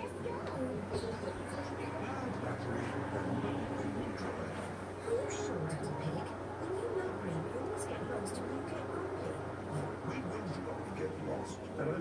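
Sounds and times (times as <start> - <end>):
muffled voices: 0.0 - 12.0
steady low hum: 0.0 - 12.0.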